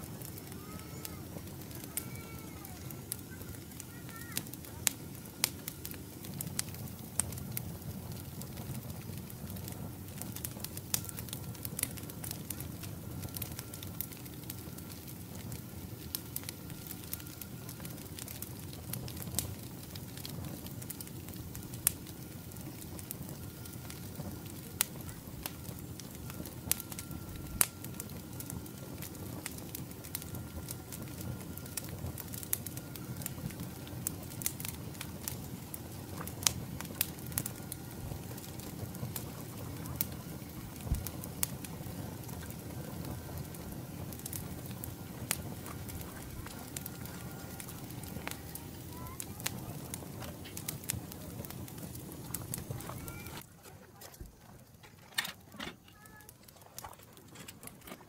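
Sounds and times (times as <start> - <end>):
campfire crackling and popping: 0.0 - 58.0.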